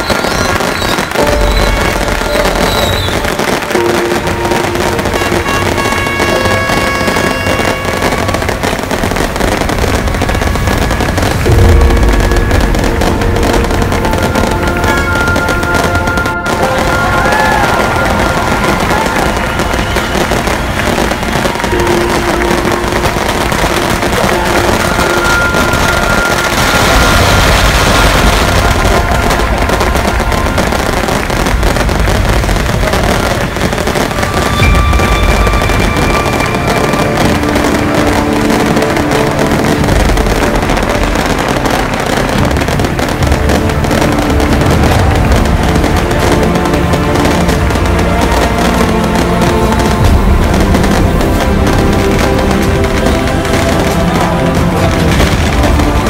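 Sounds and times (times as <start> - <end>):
firecrackers crackling: 0.0 - 56.0
music with held tones: 0.0 - 56.0.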